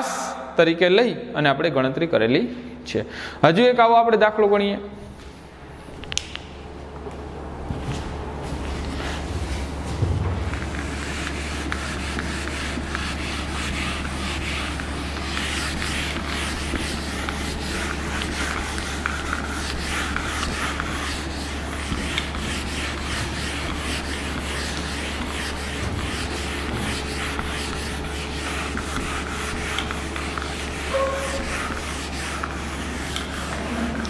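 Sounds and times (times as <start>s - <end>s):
eraser wiping whiteboard: 7.8s - 34.0s.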